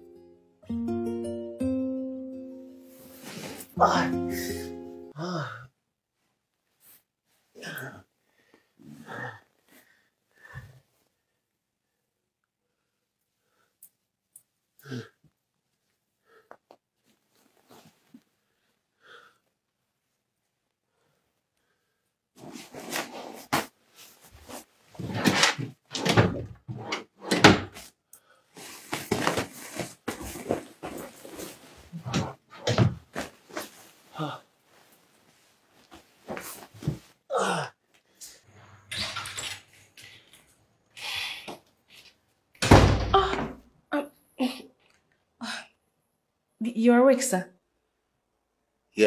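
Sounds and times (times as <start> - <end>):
man sighing: 3.8 - 5.7, 34.1 - 34.5, 37.3 - 37.8
bedding rustling and bumps: 28.6 - 34.1, 34.8 - 37.2.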